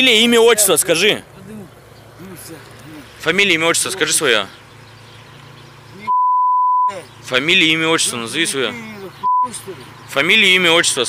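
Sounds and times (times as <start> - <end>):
low street background: 0.0 - 11.0
censor bleep: 6.1 - 7.0, 9.2 - 9.6.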